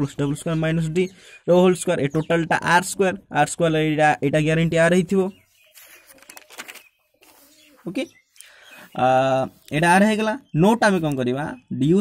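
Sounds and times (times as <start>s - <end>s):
dove cooing: 7.2s - 8.0s.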